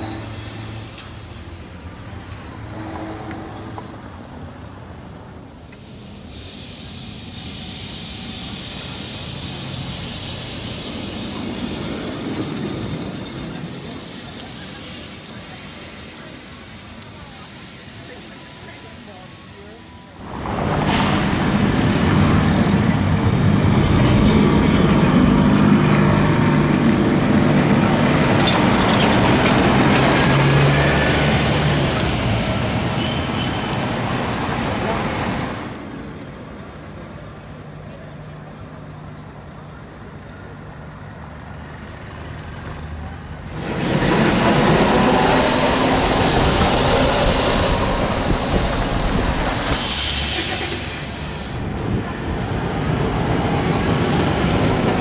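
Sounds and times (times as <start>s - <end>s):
tram running on rails: 0.0s - 55.0s
people talking: 13.4s - 20.2s.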